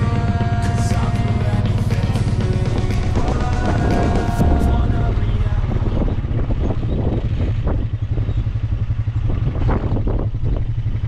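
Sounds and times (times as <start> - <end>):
quad bike engine running: 0.0 - 11.0.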